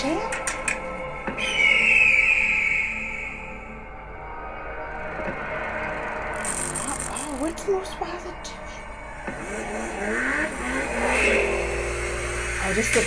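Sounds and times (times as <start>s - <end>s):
low drone: 0.0s - 13.0s
high screeching tone falling: 1.4s - 5.0s, 6.0s - 7.2s, 9.7s - 13.0s.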